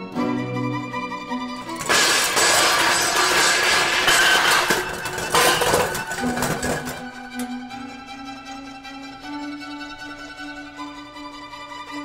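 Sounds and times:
violin music: 0.0 - 1.8, 6.1 - 12.0
debris crashing and shattering: 1.6 - 7.1.

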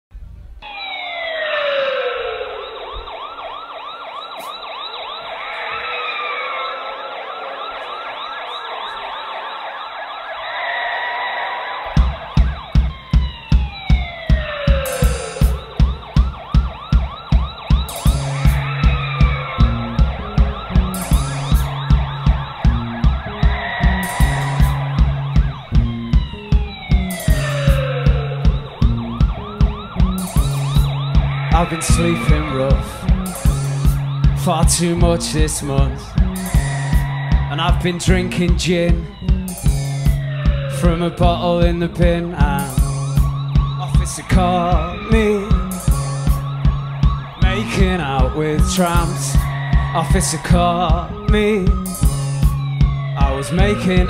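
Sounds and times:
police sirens wailing: 0.6 - 54.0
rock band playing: 11.8 - 54.0
bass notes: 11.9 - 54.0
kick drum beat: 12.0 - 37.5, 42.4 - 54.0.

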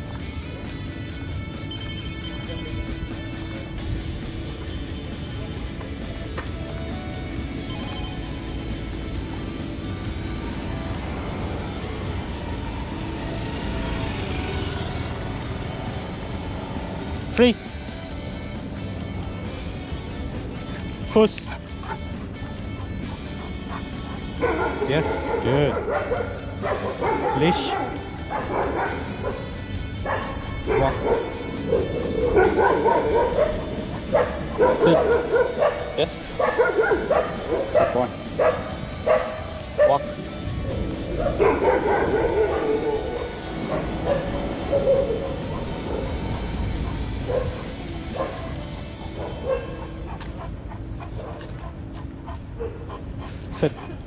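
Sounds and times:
faint music: 0.0 - 54.0
dog whining and yipping: 20.0 - 54.0.

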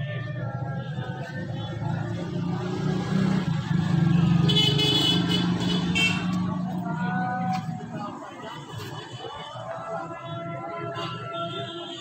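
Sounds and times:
high car horn: 4.3 - 6.4.

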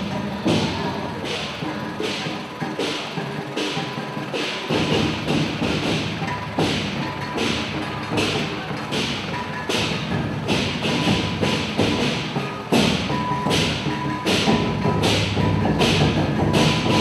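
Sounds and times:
cymbal crashes: 0.0 - 17.0
drum thuds: 0.0 - 17.0.

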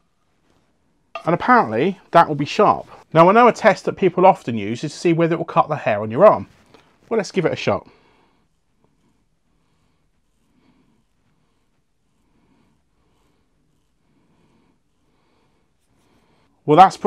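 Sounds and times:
faint soft repeating sounds: 0.0 - 17.0.

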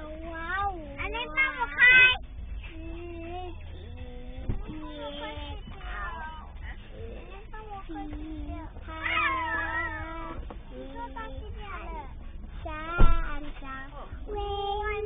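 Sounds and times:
car cabin rumble: 0.0 - 15.0
girl singing wavering notes: 2.7 - 6.4, 7.1 - 12.0.

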